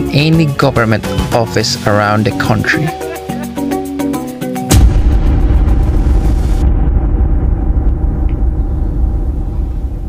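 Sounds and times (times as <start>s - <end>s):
loud deep rumble: 4.7s - 10.0s.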